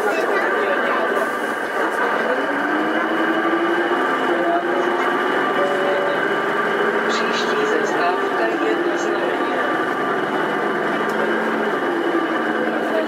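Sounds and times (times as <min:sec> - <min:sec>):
bus diesel engine running: 0:00.0 - 0:13.0.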